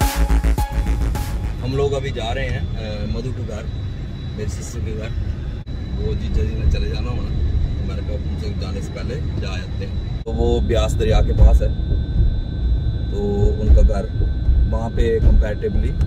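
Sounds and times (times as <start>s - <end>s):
car engine and road noise: 0.0s - 16.0s.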